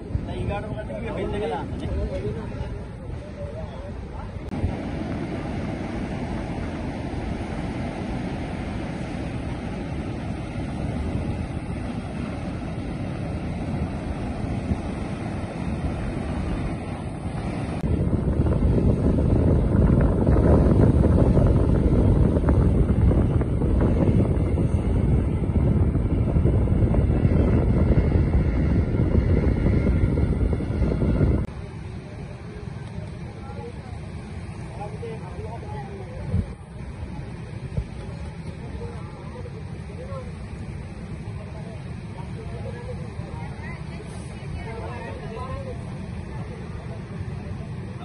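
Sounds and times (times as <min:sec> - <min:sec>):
wind noise on microphone: 0:00.0 - 0:32.2, 0:32.8 - 0:48.0
surf breaking on beach: 0:04.5 - 0:48.0.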